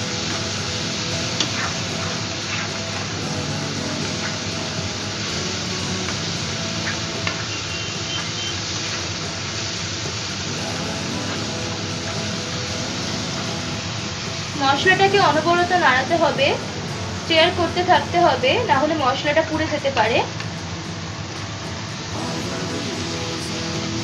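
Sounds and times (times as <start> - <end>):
background music: 0.0 - 24.0
spice paste sizzling in hot oil: 0.0 - 24.0.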